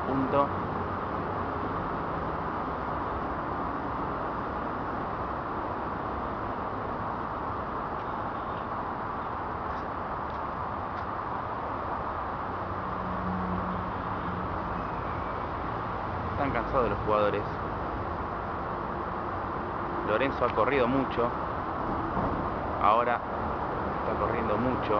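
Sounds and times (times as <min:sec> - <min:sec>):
distant traffic: 0:00.0 - 0:24.9.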